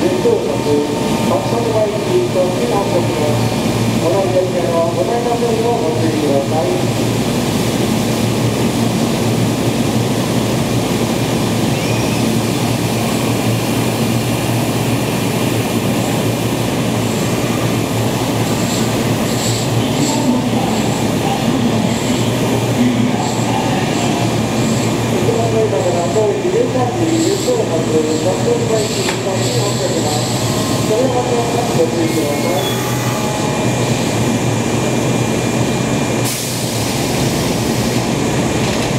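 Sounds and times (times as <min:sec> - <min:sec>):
electric train humming: 0:00.0 - 0:38.9.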